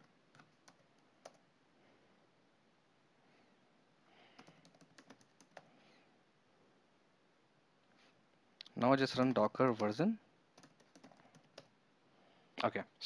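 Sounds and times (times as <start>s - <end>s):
computer keyboard keystrokes: 0.0s - 1.4s, 4.4s - 5.7s, 9.7s - 10.0s, 10.6s - 11.7s.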